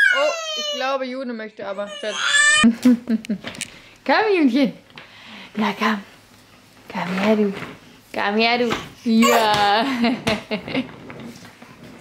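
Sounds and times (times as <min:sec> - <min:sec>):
woman's voice: 0:00.3 - 0:02.4, 0:04.0 - 0:04.8, 0:05.5 - 0:06.1, 0:06.9 - 0:10.2.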